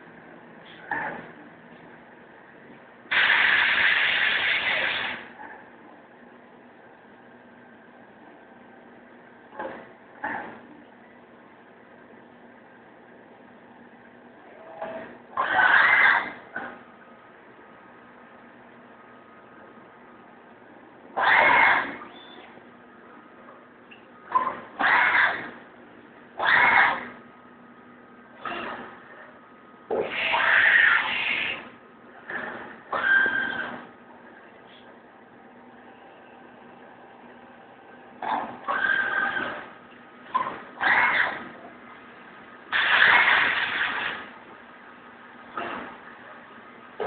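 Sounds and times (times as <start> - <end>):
low machine hum: 0.0 - 47.0
milling machine harsh burst: 3.1 - 5.3, 42.7 - 44.3
mill cutting metal squealing: 32.3 - 33.8.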